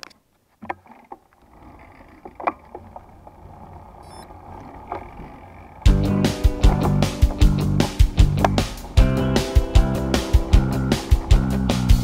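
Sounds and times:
loud music: 5.9 - 12.0.

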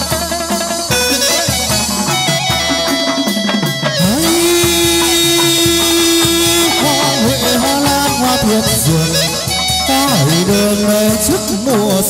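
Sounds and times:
ensemble accompaniment with drums: 0.0 - 12.0.

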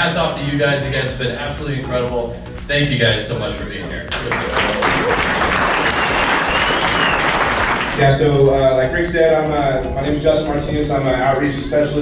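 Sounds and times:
audience applauding: 4.1 - 8.2.

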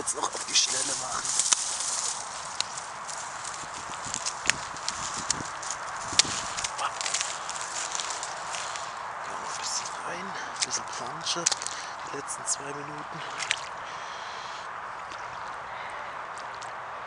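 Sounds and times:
steady hiss: 0.0 - 13.2
footsteps through wet leaves: 0.0 - 16.8
twigs cracking: 0.0 - 16.8.

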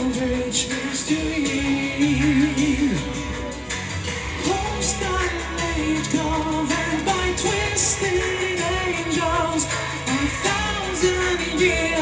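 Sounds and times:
heavy metal band playing: 0.0 - 12.0
man singing: 0.0 - 12.0.

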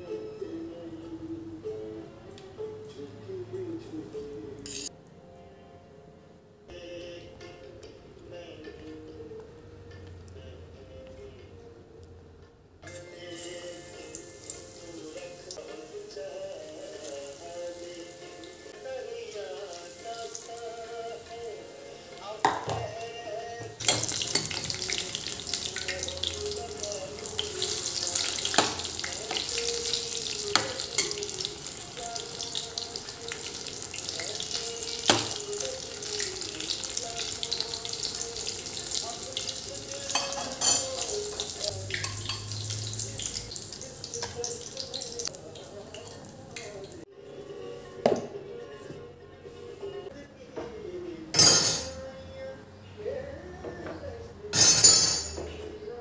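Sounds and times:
soft background music: 0.0 - 56.0
fritters sizzling in hot oil: 13.0 - 15.6, 23.8 - 47.0
metal spoon clinking on pan: 30.4 - 31.4, 40.0 - 42.8, 51.4 - 52.0, 54.6 - 55.4.

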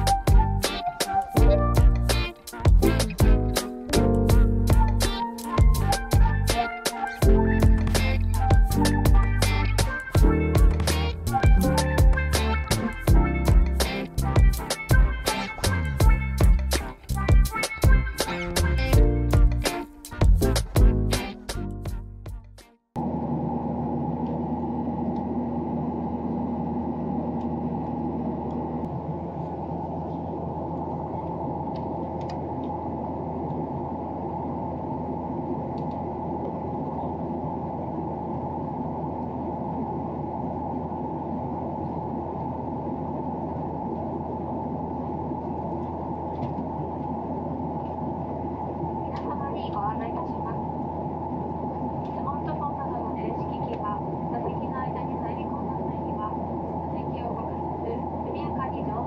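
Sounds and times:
jet airliner cabin noise: 23.0 - 59.0.

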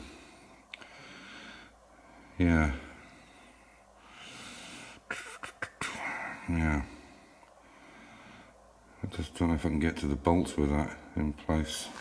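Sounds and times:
soft breath near microphone: 0.0 - 5.2, 6.0 - 9.2.

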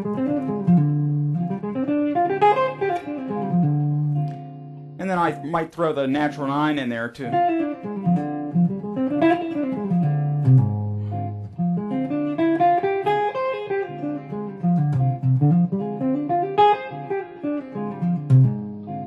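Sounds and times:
electric guitar jazz line: 0.0 - 19.0.

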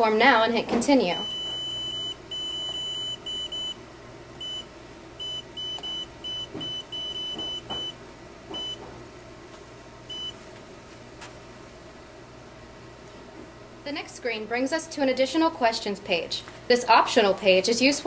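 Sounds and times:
touchscreen kiosk beeping: 1.1 - 3.8, 4.4 - 8.0, 8.6 - 8.8, 10.1 - 10.4.

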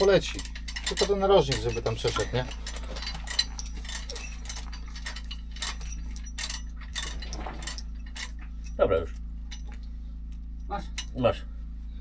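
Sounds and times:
chain links clinking and rattling: 0.0 - 11.3
steady low hum: 0.0 - 12.0.

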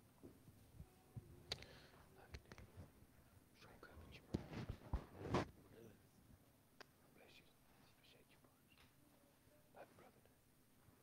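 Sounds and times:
faint low voices whispering: 0.8 - 2.9, 3.5 - 4.4, 7.0 - 10.4.

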